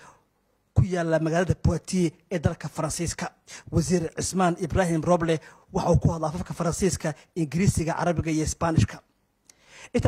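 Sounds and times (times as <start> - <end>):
man narrating: 0.8 - 9.1.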